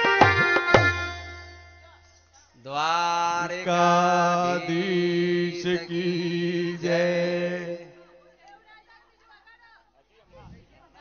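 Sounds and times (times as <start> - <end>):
man chanting into microphone: 2.6 - 8.1.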